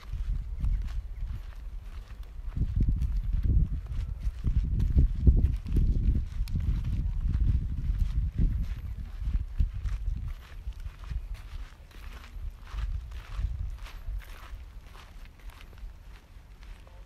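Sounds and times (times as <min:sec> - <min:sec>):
wind buffeting microphone: 0:00.0 - 0:16.8
footsteps on dry ground: 0:00.0 - 0:17.0.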